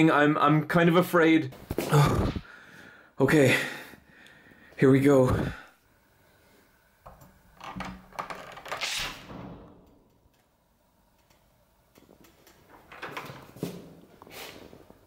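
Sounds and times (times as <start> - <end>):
door swishing open: 8.6 - 9.8.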